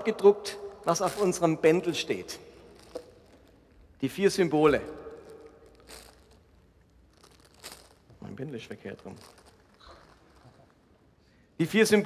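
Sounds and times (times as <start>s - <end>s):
umbrella rustle: 0.4s - 11.2s.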